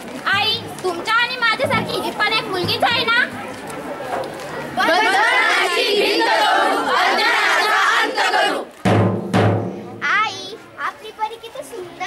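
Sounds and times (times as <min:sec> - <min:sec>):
children chanting loudly: 0:04.8 - 0:08.7
drum struck: 0:08.8 - 0:10.3.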